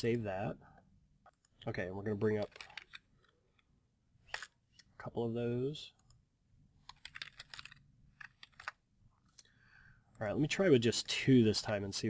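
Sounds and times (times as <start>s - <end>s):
computer keyboard typing: 6.9s - 8.8s.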